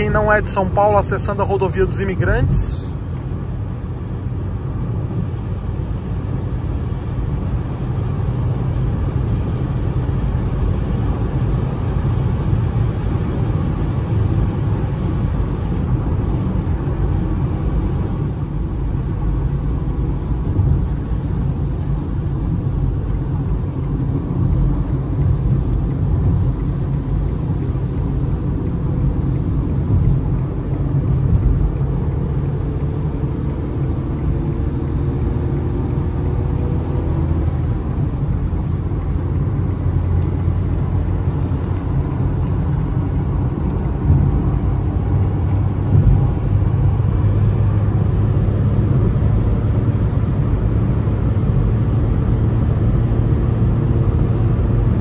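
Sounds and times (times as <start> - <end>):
car engine drone in cabin: 0.0 - 55.0.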